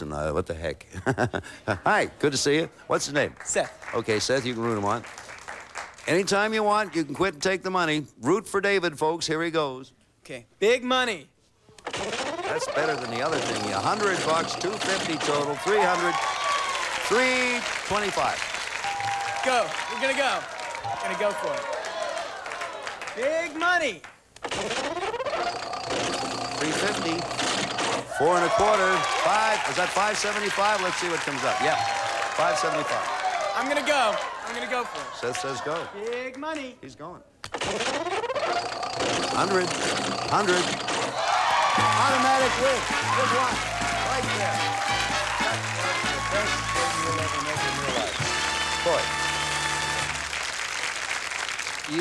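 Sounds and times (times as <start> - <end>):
studio audience applauding: 3.2 - 7.2, 12.4 - 24.2, 25.0 - 36.4, 38.2 - 52.0
slot machine reels spinning: 11.8 - 20.4, 24.4 - 32.9, 37.5 - 50.4.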